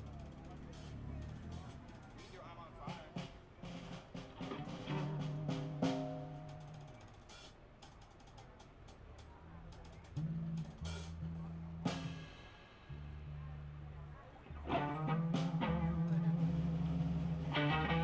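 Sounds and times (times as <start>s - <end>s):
held bass notes: 0.0s - 2.0s, 4.4s - 7.0s, 10.1s - 18.0s
drum strikes: 0.0s - 12.9s
live rock band playing: 3.6s - 7.5s, 14.6s - 18.0s.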